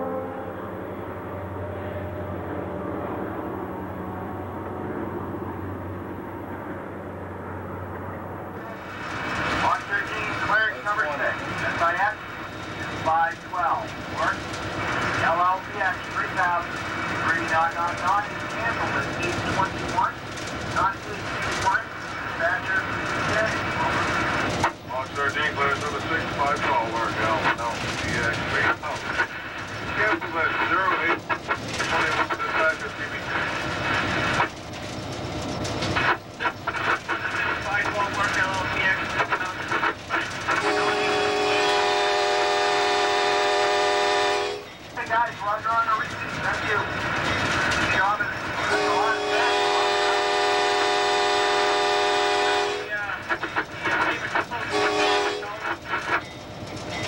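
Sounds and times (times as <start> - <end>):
locomotive horn blast: 0.0 - 0.7, 40.5 - 44.7, 48.6 - 52.9, 54.7 - 55.6
diesel locomotive rumble: 0.0 - 57.0.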